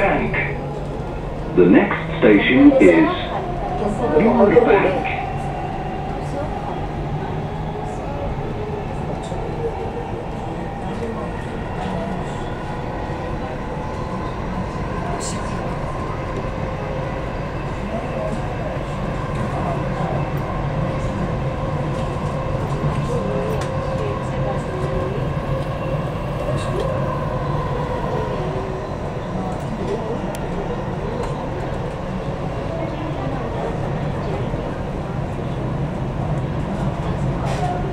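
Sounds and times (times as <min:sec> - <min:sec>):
train rumble and rolling noise: 0:00.0 - 0:37.9.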